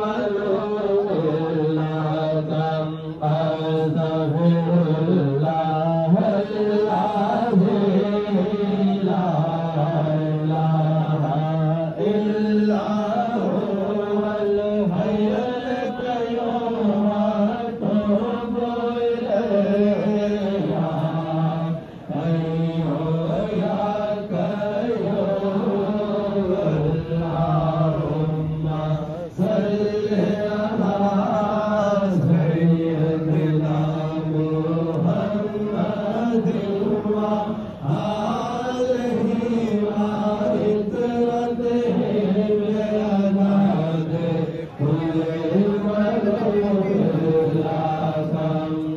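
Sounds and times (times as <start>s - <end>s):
men chanting devotional chant: 0.0s - 48.9s.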